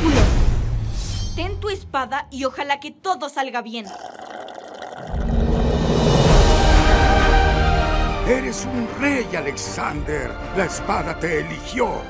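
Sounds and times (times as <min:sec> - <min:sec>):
drink slurped through straw: 0:03.9 - 0:06.1
trailer music: 0:05.1 - 0:12.0.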